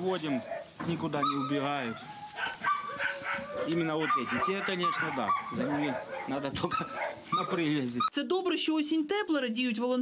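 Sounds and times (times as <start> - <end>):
man talking: 0.0 - 2.1, 3.6 - 8.1
dogs barking: 0.2 - 8.1.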